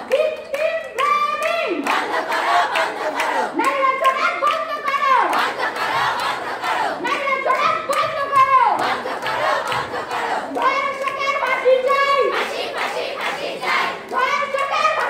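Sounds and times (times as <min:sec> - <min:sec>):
hand clapping: 0:00.0 - 0:15.0
women chanting slogans: 0:00.0 - 0:15.0.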